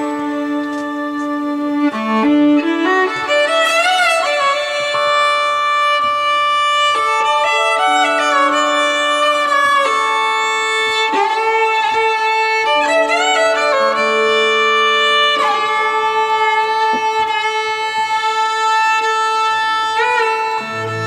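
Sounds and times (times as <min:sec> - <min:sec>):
bowed violin sustained notes: 0:00.0 - 0:21.0.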